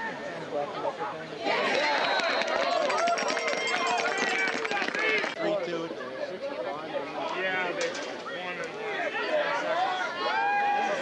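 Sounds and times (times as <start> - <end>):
crowd shouting and cheering: 1.4 - 5.4, 7.3 - 11.0.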